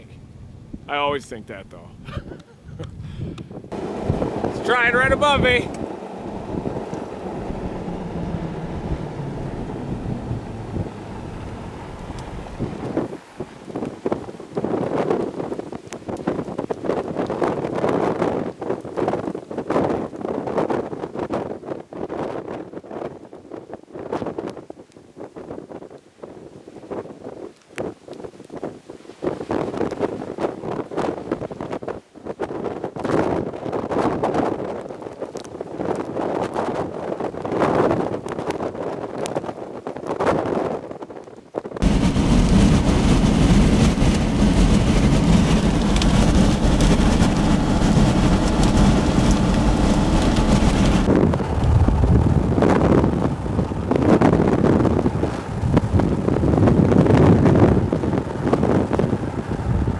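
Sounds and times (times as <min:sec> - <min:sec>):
gusty wind buffeting microphone: 0:00.0 - 0:59.9
rush of wind and road noise: 0:00.0 - 0:59.9.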